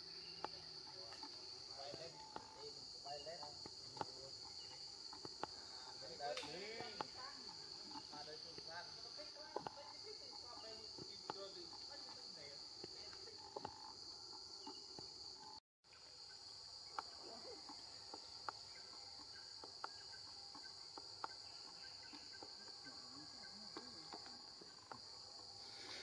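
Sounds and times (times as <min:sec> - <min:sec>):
insects chorus: 0:00.0 - 0:26.0.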